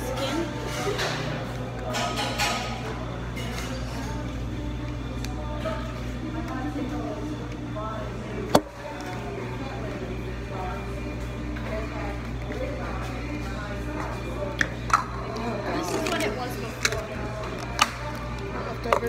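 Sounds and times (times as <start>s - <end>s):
indistinct talk: 0.0s - 19.0s.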